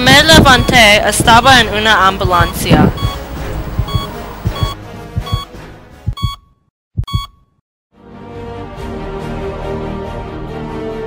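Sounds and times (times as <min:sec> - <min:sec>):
low double-thump heartbeat: 0:00.0 - 0:01.6, 0:02.2 - 0:05.5, 0:06.1 - 0:06.4
background music: 0:00.0 - 0:06.4, 0:08.0 - 0:11.0
electronic heart monitor beep: 0:00.3 - 0:01.0, 0:02.2 - 0:03.2, 0:03.8 - 0:05.5, 0:06.1 - 0:07.6.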